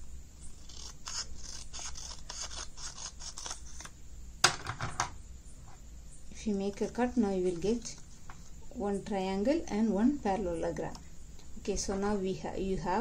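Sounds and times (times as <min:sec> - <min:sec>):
scissors cutting paper: 0:00.6 - 0:03.9.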